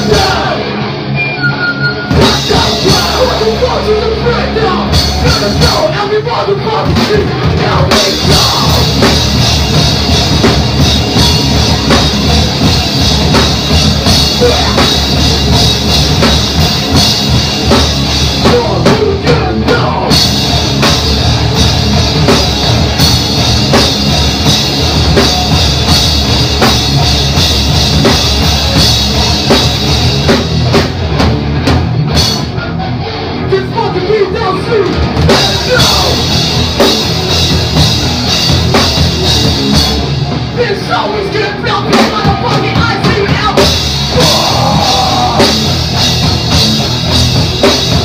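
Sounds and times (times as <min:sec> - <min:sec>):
live rock band playing: 0:00.0 - 0:48.0.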